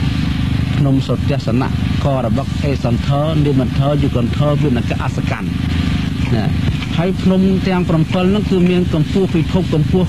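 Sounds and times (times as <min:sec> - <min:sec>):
low hum: 0:00.0 - 0:10.0
man speaking: 0:00.6 - 0:10.0.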